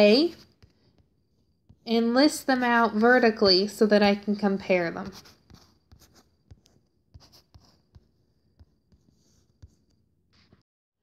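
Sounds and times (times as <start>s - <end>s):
stylus tapping and scratching on screen: 0.0s - 3.4s, 4.2s - 10.6s.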